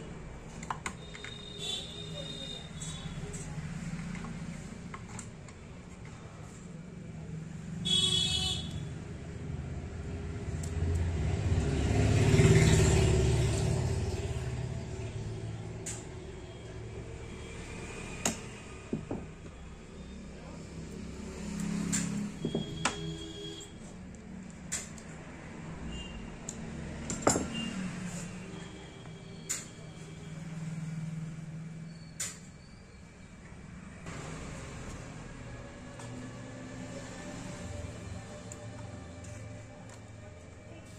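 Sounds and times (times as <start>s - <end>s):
small parts clicking and tapping: 0.5s - 1.6s, 29.4s - 29.8s
motor vehicle passing: 10.0s - 15.7s, 20.7s - 22.4s.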